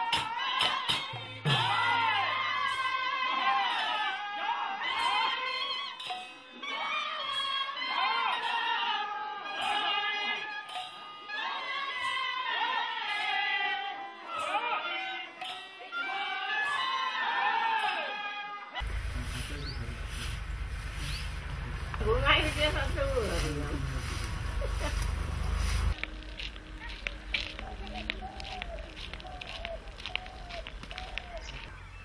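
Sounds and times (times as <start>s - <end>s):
devotional singing: 0.0s - 18.8s
person speaking: 21.3s - 26.0s.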